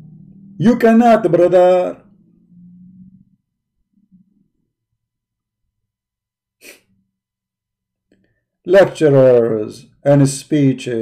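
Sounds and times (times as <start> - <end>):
man's sharp breath: 6.6 - 6.9.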